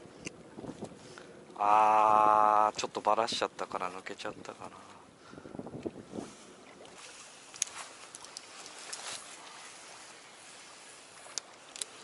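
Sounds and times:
water splashing and dripping: 0:06.6 - 0:12.0.

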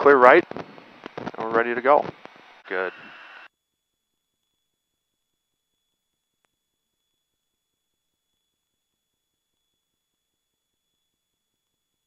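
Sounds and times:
steady hiss: 0:00.0 - 0:03.5.

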